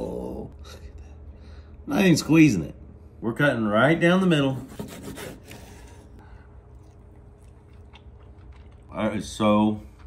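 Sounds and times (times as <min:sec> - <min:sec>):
low room hum: 0:00.0 - 0:10.0
chewing: 0:06.7 - 0:10.0.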